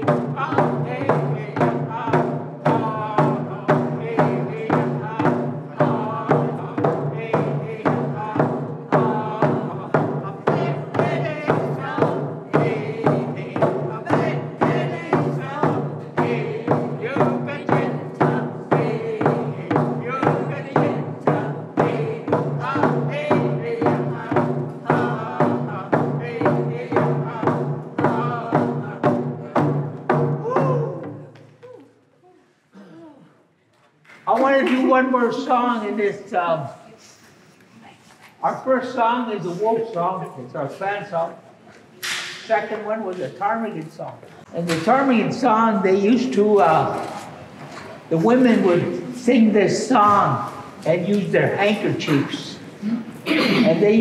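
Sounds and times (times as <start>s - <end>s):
group singing in unison: 0.0s - 31.3s
frame drums beaten: 0.0s - 31.4s, 44.4s - 54.0s.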